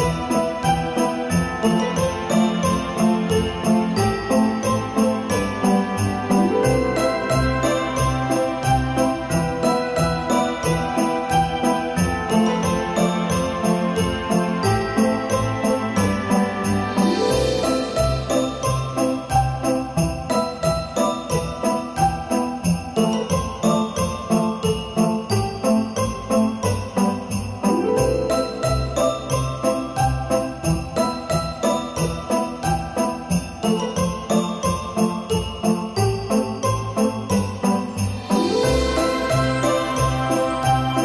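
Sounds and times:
jingle bells shaking: 0:00.0 - 0:41.0
upbeat christmas music: 0:00.0 - 0:41.0.

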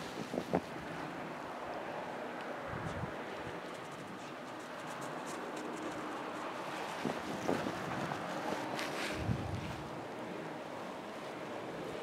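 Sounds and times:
wind buffeting microphone: 0:00.0 - 0:01.2, 0:02.6 - 0:04.2, 0:05.4 - 0:10.3.

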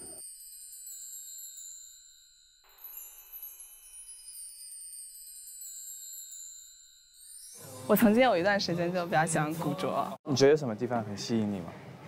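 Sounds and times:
high twinkling chimes: 0:00.0 - 0:08.7.

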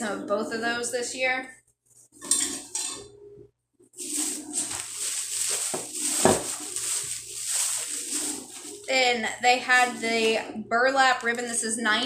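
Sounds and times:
plastic bag rustling: 0:04.0 - 0:10.5.

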